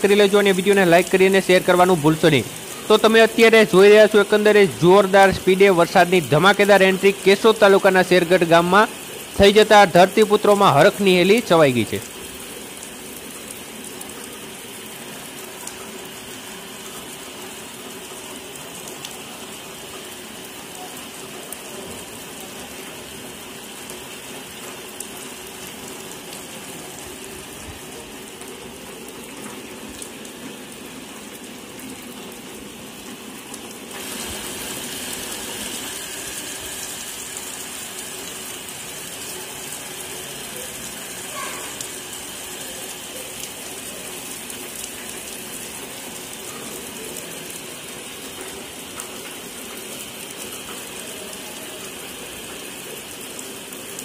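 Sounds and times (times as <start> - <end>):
heavy rain splashing on concrete: 0.0 - 54.0.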